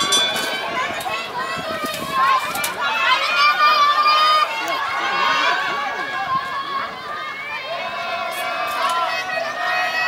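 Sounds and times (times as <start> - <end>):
spectators shouting encouragement: 0.0 - 10.0.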